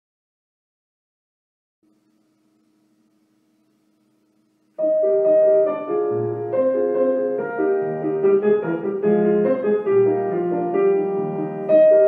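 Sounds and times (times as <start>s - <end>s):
grand piano melody: 4.2s - 12.0s.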